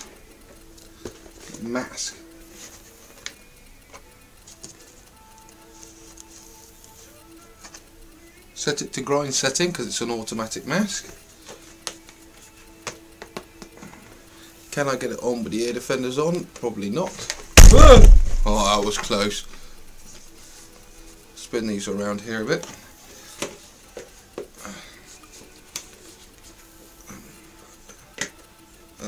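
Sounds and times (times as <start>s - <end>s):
steady low hum: 17.5s - 21.2s.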